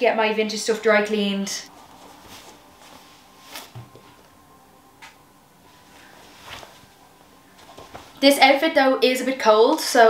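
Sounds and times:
faint rustles: 1.7 - 8.3.

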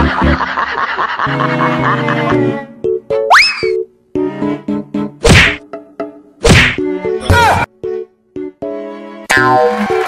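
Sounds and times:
light background tune: 1.4 - 10.0
loud whack hits: 5.2 - 5.6, 6.4 - 6.8.

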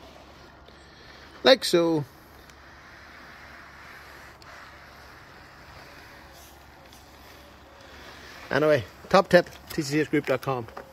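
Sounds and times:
plastic bag rubbing on glass: 0.0 - 9.2.

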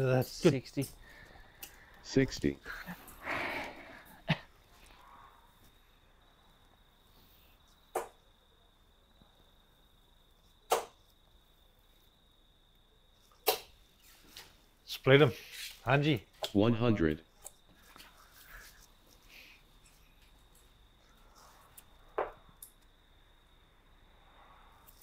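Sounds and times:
darts thudding into dartboard: 10.7 - 11.0.

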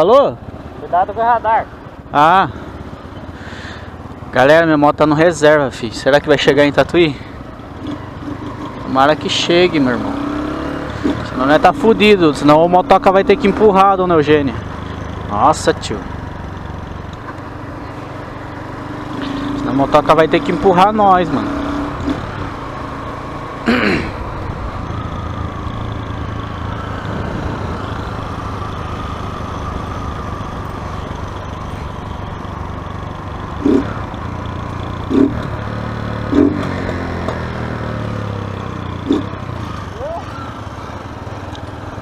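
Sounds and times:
small motorcycle engine running: 2.2 - 42.0.

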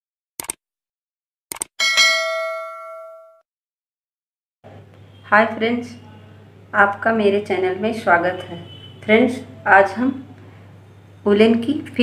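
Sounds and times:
notification bell ding: 1.8 - 3.4.

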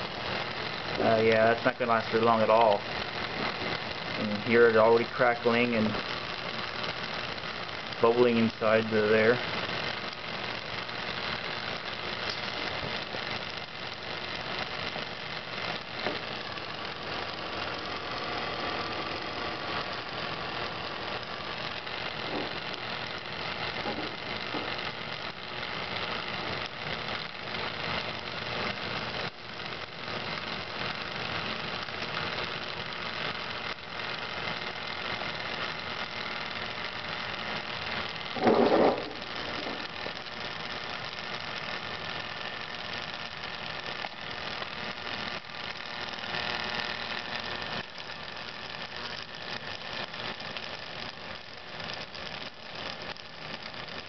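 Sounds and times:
fan motor humming: 0.0 - 31.2
crackling inside motor: 0.0 - 54.0.

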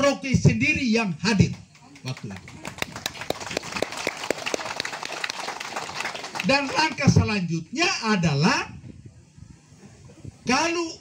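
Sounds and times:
audience clapping: 1.5 - 7.1.

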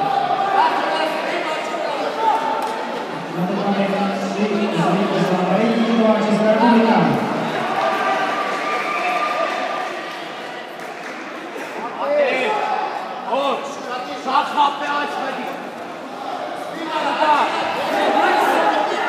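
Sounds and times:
voices echoing in a sports hall: 0.0 - 19.0.

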